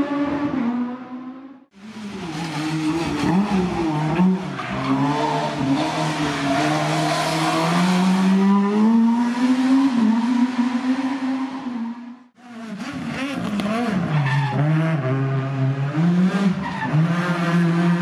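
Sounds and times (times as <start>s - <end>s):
rally car engine accelerating: 0.0s - 18.0s.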